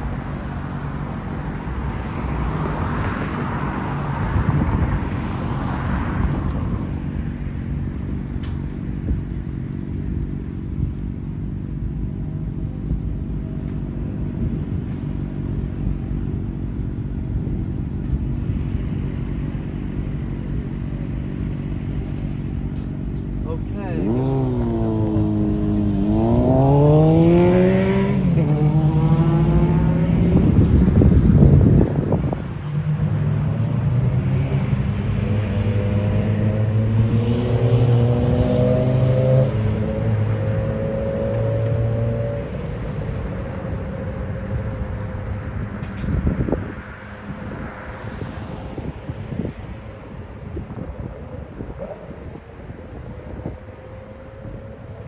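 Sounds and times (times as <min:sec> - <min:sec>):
street traffic rumble: 0:00.0 - 0:55.0
vehicle engine revving: 0:00.0 - 0:55.0.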